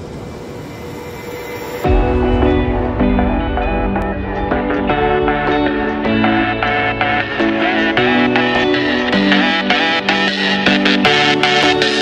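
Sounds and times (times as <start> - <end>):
steady rushing wind noise: 0.0 - 10.3
guitar music: 1.8 - 12.0.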